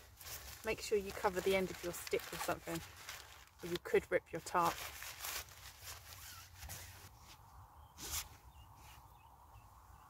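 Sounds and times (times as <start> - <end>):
tarp fabric rustling and scraping: 0.0 - 7.4.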